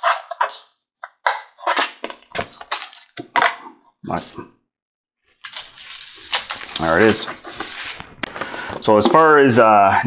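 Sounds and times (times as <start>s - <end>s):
plastic crackling: 5.3s - 9.3s.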